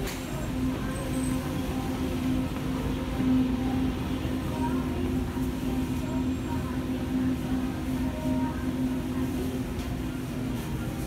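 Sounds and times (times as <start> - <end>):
continuous rumbling noise: 0.0 - 11.0
steady low hum: 0.0 - 11.0.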